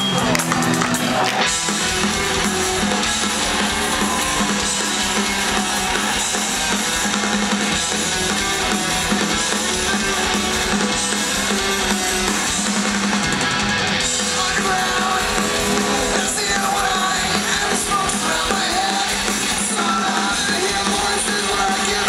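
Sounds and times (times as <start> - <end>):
live punk rock band: 0.0 - 22.0.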